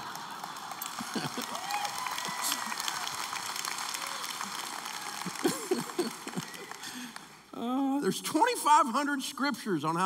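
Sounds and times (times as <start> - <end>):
audience laughing: 0.0 - 1.7, 5.2 - 7.0
audience clapping: 0.0 - 7.6.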